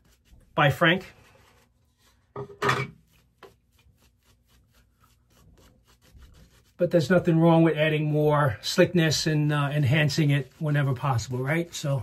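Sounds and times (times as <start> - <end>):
shaving brush strokes on face: 0.0 - 2.3, 3.0 - 12.0.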